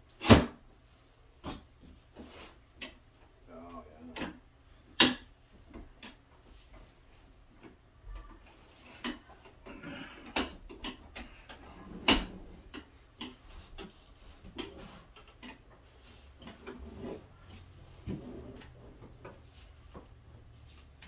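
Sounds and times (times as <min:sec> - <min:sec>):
folding table legs clicking: 0:07.6 - 0:16.8.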